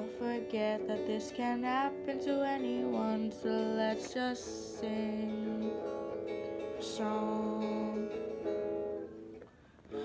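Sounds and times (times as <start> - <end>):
electric guitar chord strums: 0.0 - 10.0.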